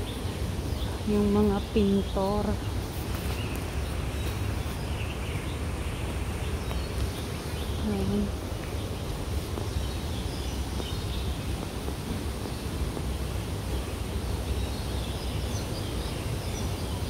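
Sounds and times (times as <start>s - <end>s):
wind rumble on microphone: 0.0s - 17.0s.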